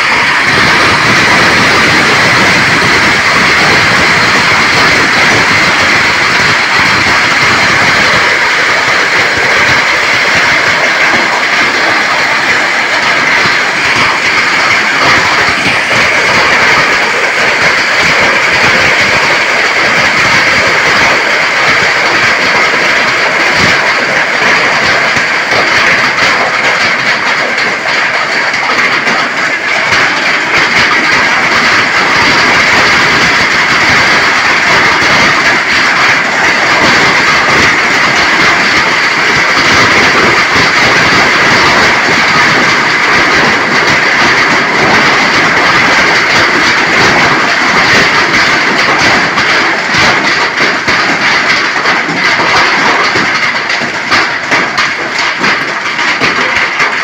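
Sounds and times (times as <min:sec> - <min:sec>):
heavy rain pouring: 0:00.0 - 0:57.0.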